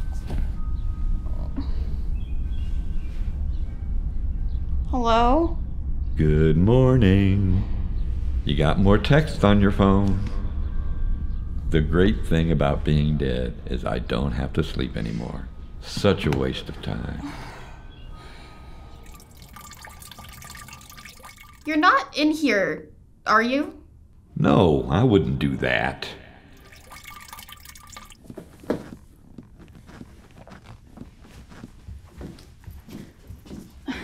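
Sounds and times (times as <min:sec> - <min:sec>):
water dripping and trickling: 0:18.9 - 0:22.1, 0:26.5 - 0:28.2
foot shifting on hard floor: 0:28.2 - 0:33.8.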